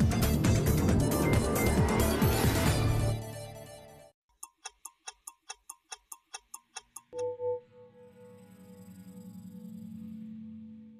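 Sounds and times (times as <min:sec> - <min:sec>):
sustained low synth pad: 0:00.0 - 0:03.5, 0:07.3 - 0:10.9
clock-like ticks: 0:04.3 - 0:07.4.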